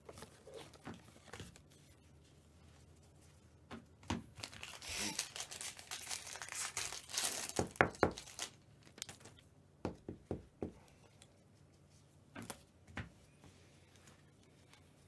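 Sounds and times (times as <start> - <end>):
foil wrapper tearing and crinkling: 4.3 - 9.4.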